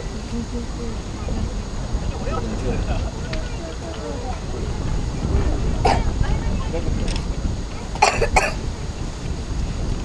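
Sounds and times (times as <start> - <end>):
steady low rumble: 0.0 - 10.0
person coughing: 8.0 - 8.6.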